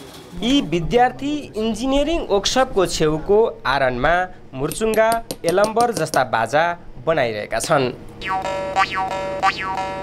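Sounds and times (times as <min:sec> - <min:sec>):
jaw harp twanging drone: 0:08.2 - 0:10.0.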